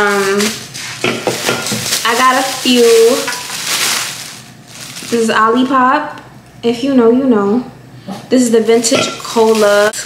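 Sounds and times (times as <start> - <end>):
plastic bag rustling and crinkling: 0.0 - 5.6, 8.6 - 10.0.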